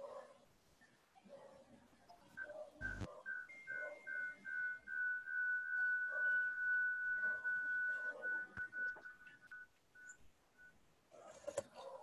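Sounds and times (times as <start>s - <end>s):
high whistle-like tone: 2.4s - 10.2s.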